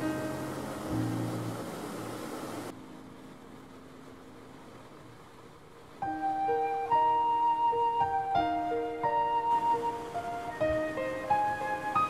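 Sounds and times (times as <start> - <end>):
water rushing along hull: 0.0 - 12.0.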